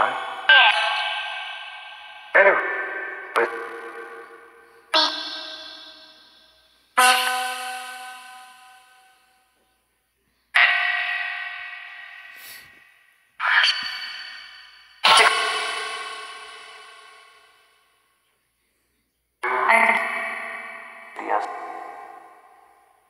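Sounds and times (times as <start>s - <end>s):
echoing ringing sound snippets: 0.0s - 9.6s, 10.6s - 17.9s, 19.4s - 23.0s.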